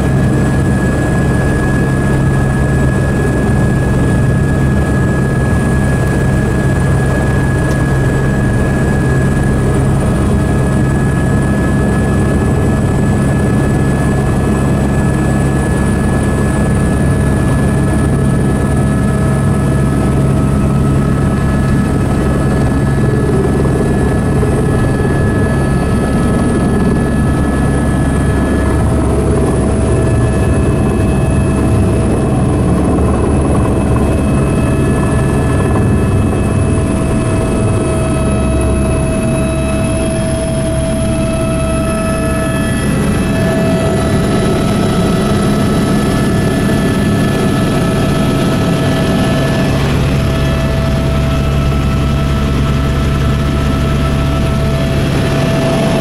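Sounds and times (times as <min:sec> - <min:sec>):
helicopter engine and rotor drone: 0:00.0 - 0:56.0
high whine: 0:19.7 - 0:56.0.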